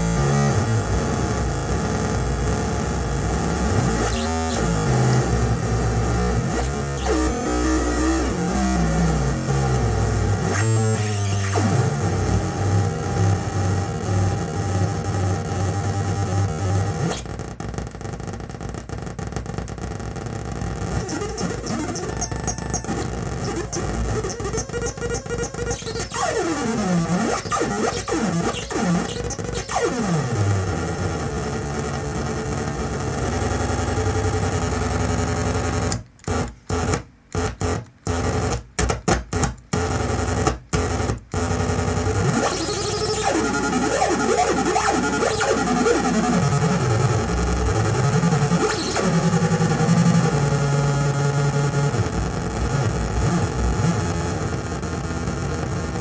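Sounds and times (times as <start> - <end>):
analog synth droning: 0.0 - 35.8, 41.5 - 56.0.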